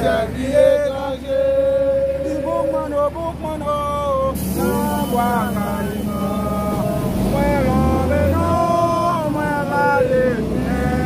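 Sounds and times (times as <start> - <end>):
vehicle engine rumble: 0.0 - 11.0.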